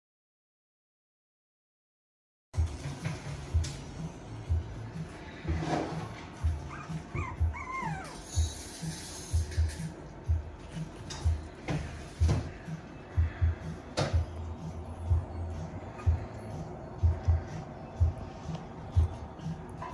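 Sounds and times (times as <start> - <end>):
puppies yipping and whining: 6.4 - 9.4.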